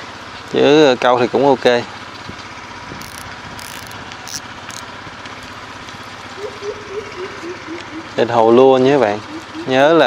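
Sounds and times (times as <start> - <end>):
spinning reel whirring: 3.0 - 4.9.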